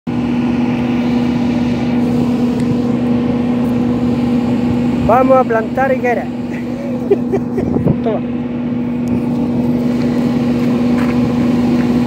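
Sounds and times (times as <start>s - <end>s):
steady machine hum: 0.1s - 12.0s.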